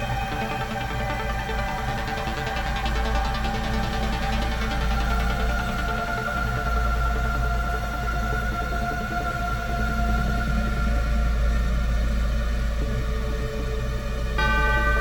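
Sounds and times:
electronic synthesizer music: 0.0s - 6.9s.

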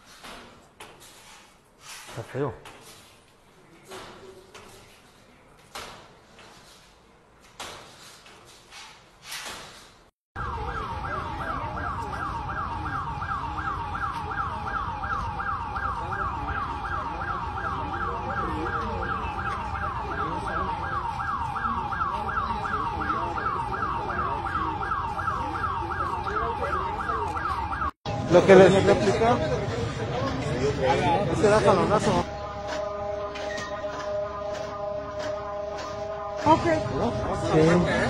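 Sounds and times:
warning siren rising whoop: 10.4s - 28.0s.

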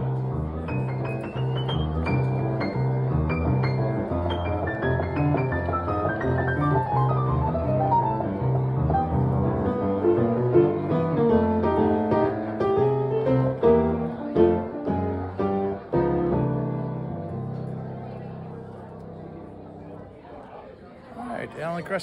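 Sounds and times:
solo piano: 0.0s - 20.3s.

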